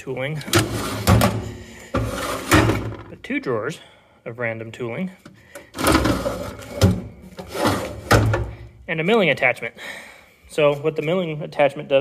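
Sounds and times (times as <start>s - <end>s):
steel drawer sliding: 0.5s - 3.0s, 5.8s - 8.5s.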